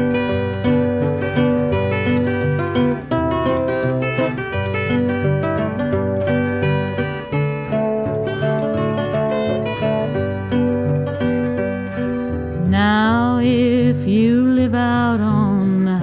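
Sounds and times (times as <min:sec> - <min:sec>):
acoustic guitar picking: 0:00.0 - 0:16.0
held melody line with vibrato: 0:00.0 - 0:16.0.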